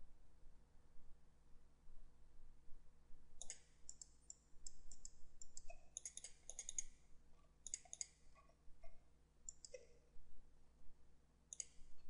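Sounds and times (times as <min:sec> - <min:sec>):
faint steady hum: 0:00.0 - 0:12.0
computer mouse clicking: 0:03.4 - 0:08.2, 0:09.5 - 0:09.8, 0:11.5 - 0:11.9.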